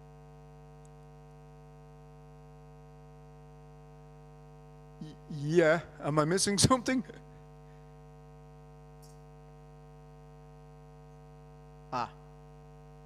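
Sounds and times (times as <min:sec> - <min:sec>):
electrical mains hum: 0:00.0 - 0:13.0
short vocal sound: 0:05.0 - 0:05.6.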